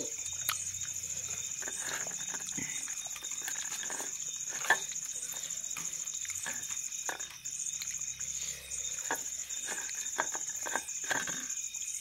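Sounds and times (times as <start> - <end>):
chewing sounds: 0.0 - 11.6
cricket trill: 0.0 - 12.0
fingers mixing rice: 0.0 - 12.0.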